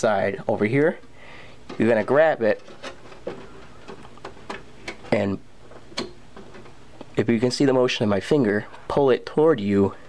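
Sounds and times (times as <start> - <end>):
faint steady hiss: 0.0 - 10.0.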